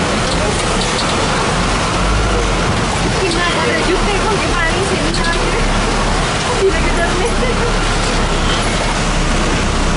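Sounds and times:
heavy vehicle engine and road noise: 0:00.0 - 0:09.9.

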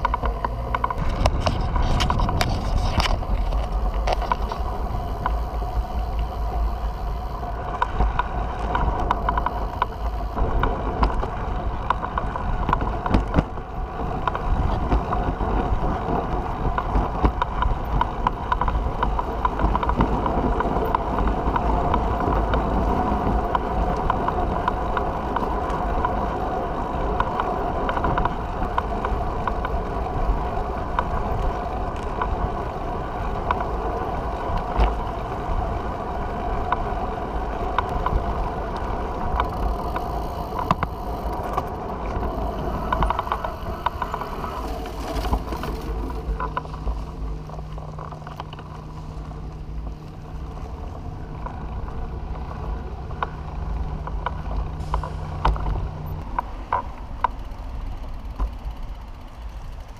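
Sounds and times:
tyres and drivetrain hum: 0:00.0 - 0:59.9.

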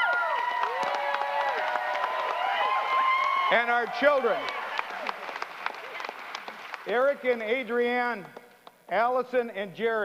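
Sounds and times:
crowd applauding: 0:00.0 - 0:07.4.

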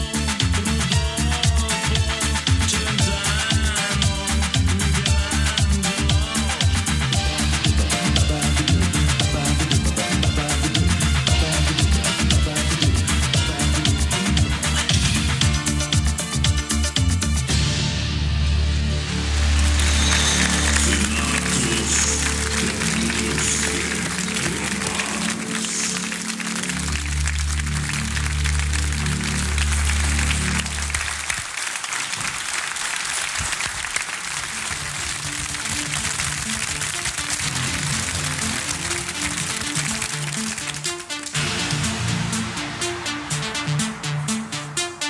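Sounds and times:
disco pop song with heavy bass: 0:00.0 - 0:17.9, 0:18.9 - 0:31.3, 0:37.4 - 0:45.0
audience applauding: 0:19.2 - 0:41.9.

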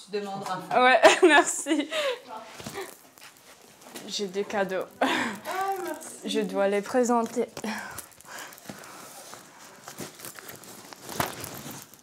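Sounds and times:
bags rustling and crinkling: 0:01.7 - 0:12.0.

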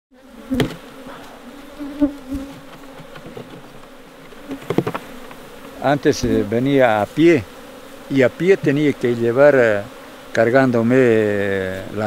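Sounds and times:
honeybees buzzing: 0:00.1 - 0:12.0.

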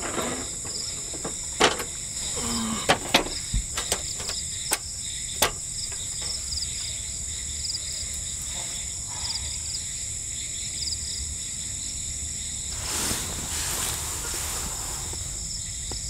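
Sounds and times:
high-pitched insect chorus: 0:00.0 - 0:16.0.

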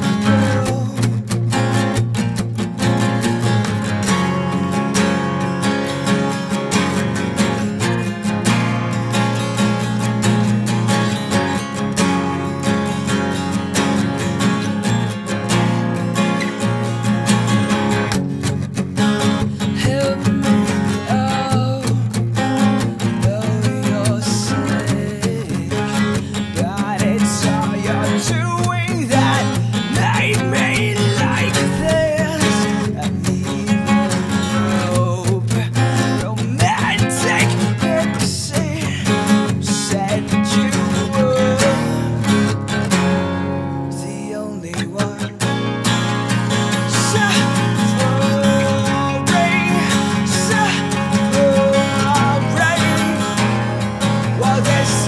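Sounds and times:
acoustic guitar picking lead line: 0:00.0 - 0:55.0
acoustic guitar strumming chords: 0:00.0 - 0:55.0.

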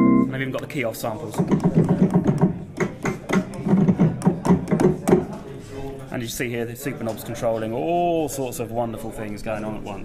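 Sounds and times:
low synthesizer part: 0:00.0 - 0:00.5
synthesizer percussive notes: 0:00.0 - 0:00.5.

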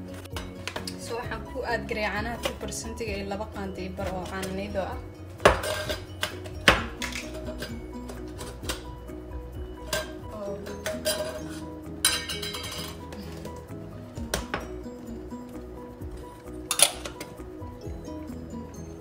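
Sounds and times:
tins and utensils clinking: 0:00.0 - 0:01.2, 0:03.9 - 0:04.8, 0:05.4 - 0:09.0, 0:09.8 - 0:13.7, 0:16.6 - 0:17.4
background music: 0:00.0 - 0:19.0.

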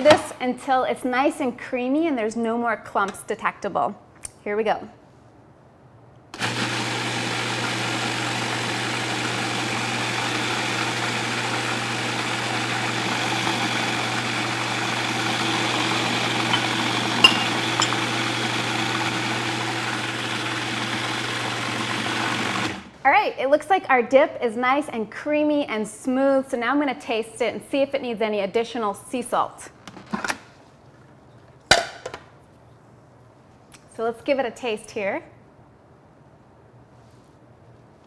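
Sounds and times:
food processor motor running: 0:06.4 - 0:22.9.

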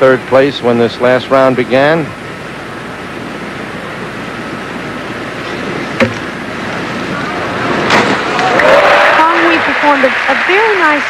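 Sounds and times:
outdoor diving venue ambience: 0:00.0 - 0:11.0.

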